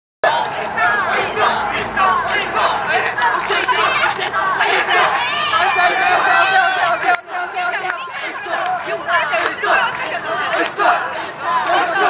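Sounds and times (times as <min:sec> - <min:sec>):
crowd shouting together: 0:00.2 - 0:12.0.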